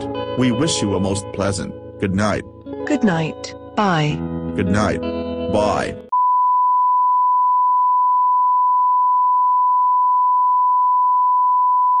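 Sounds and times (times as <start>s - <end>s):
music: 0.0s - 6.1s
television test tone beep: 6.1s - 12.0s.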